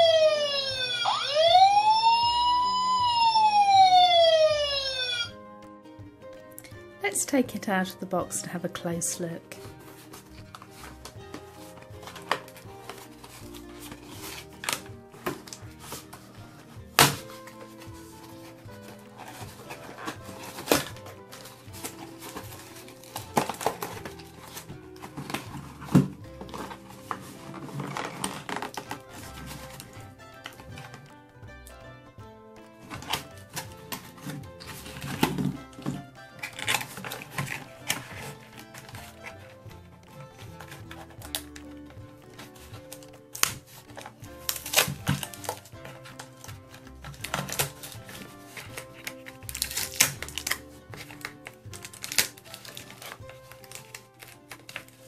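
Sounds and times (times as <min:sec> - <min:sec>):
background music: 0:00.0 - 0:55.0
toy packaging being opened: 0:09.8 - 0:31.0, 0:32.8 - 0:55.0.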